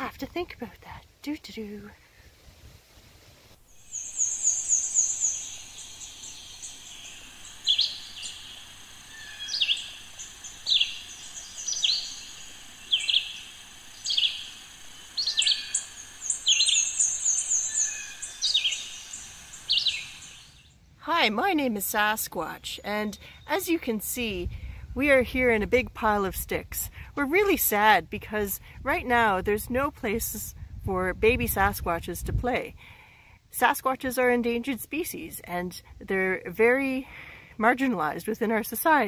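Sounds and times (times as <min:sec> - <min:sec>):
rapid high bird chirps: 0:03.7 - 0:20.8.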